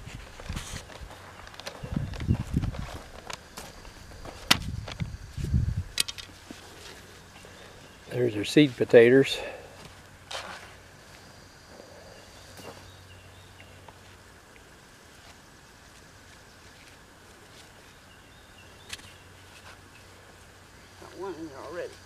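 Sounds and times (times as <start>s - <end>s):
knocks and rustles in soil: 0.0s - 7.2s, 8.1s - 11.3s, 15.0s - 18.2s, 18.8s - 20.1s.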